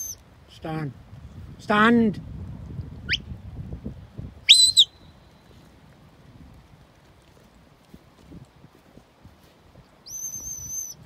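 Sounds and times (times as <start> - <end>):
high whistle: 4.5 - 5.2, 10.1 - 11.0.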